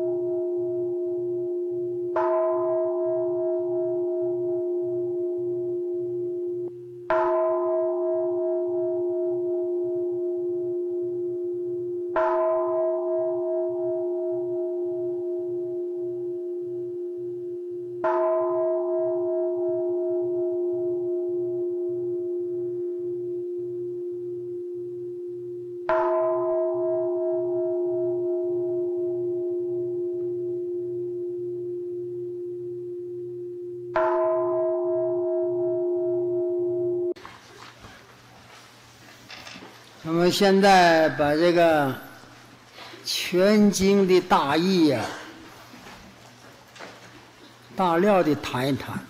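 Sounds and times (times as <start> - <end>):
bowl bell ringing: 0.0 - 37.2.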